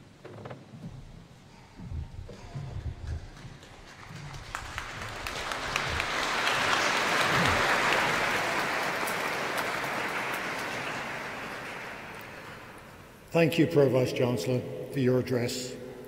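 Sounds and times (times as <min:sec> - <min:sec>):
audience applauding: 0:03.0 - 0:13.1.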